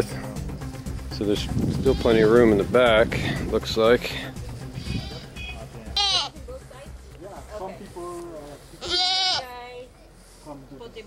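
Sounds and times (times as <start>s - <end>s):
goat bleating: 1.7s - 2.5s, 4.8s - 6.4s, 8.8s - 9.6s
faint voices: 4.0s - 11.0s.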